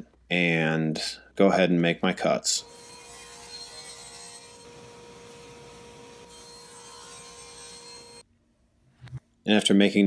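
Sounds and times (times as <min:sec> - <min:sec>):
table saw cutting plywood: 0:02.6 - 0:08.2.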